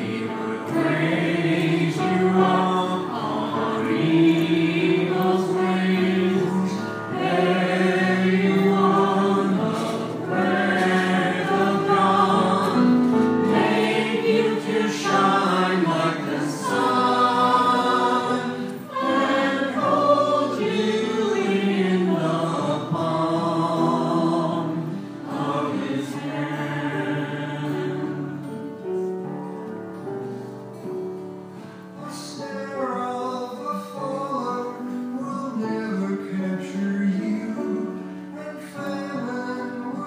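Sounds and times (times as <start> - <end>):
choir singing in harmony: 0.0 - 29.3, 31.7 - 40.0.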